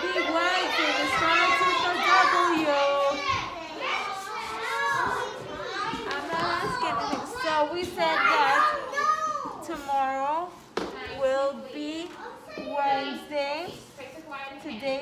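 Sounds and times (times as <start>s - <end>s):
young children talking and calling: 0.0s - 15.0s.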